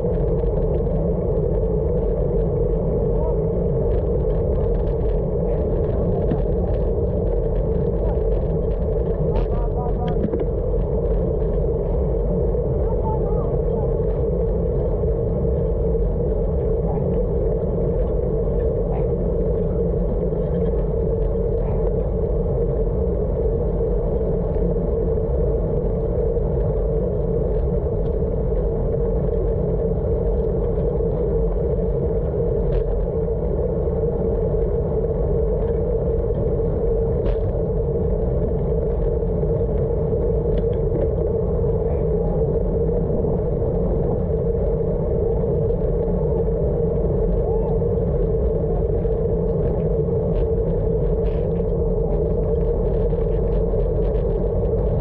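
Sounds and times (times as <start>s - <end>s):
low hum: 0.0s - 55.0s
wind noise on microphone: 0.0s - 55.0s.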